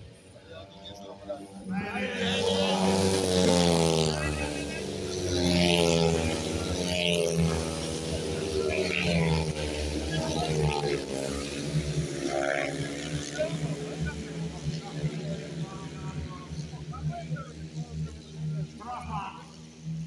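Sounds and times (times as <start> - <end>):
motorcycles racing past: 0.0 - 20.0.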